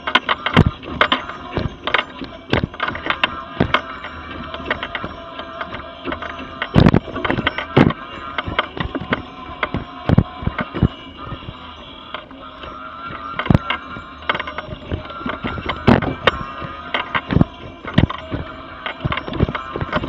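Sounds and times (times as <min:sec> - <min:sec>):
electric drive whining: 0:00.0 - 0:20.0
scooter frame knocking and rattling: 0:00.0 - 0:20.0.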